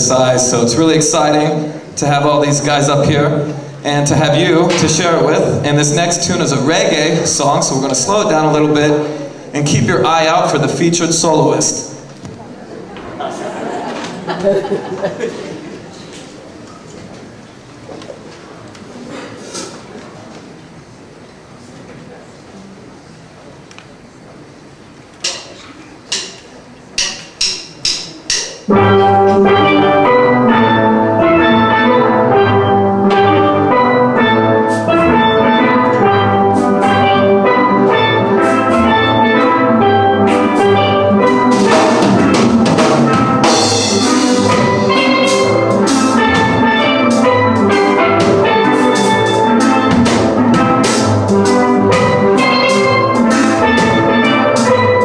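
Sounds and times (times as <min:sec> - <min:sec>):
steel drum band playing reggae: 0:00.0 - 0:12.2, 0:26.1 - 0:55.0.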